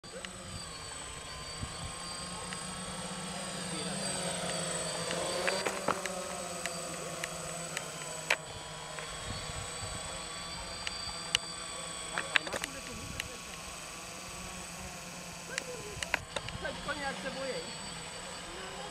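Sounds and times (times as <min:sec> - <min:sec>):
drone propellers whining: 0:00.0 - 0:18.9
sharp clicks: 0:04.4 - 0:09.1, 0:12.1 - 0:13.7, 0:15.5 - 0:16.7.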